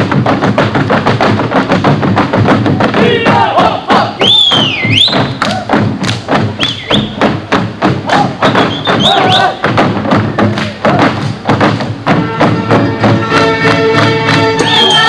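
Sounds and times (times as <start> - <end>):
boots stamping on a stage: 0.0 - 15.0
dancers whooping: 8.1 - 9.6, 14.4 - 15.0
folk orchestra music: 12.0 - 15.0.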